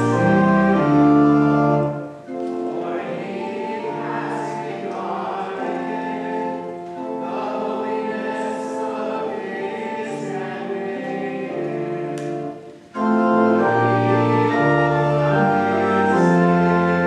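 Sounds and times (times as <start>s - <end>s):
congregation singing: 0.0s - 17.0s
organ chords: 0.0s - 17.0s.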